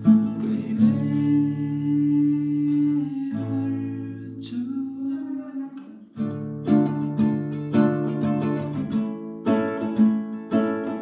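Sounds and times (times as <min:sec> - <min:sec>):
man singing: 0:00.0 - 0:06.0
acoustic guitar: 0:00.0 - 0:11.0.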